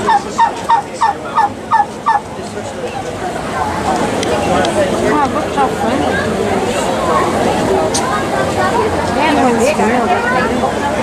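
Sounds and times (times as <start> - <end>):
turkey gobbling: 0.0 - 2.3.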